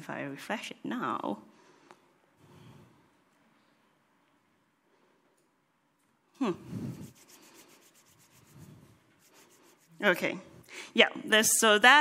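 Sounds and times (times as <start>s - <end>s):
hands rubbing together: 6.6s - 10.2s.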